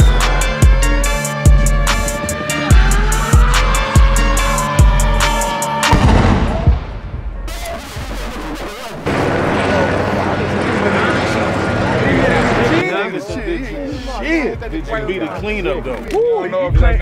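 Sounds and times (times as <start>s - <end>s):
music beat: 0.0s - 9.1s
gunfire and explosions: 5.8s - 11.9s.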